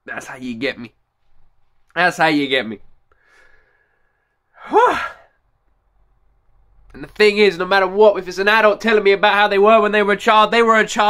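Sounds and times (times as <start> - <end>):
man sighing: 4.5 - 5.4.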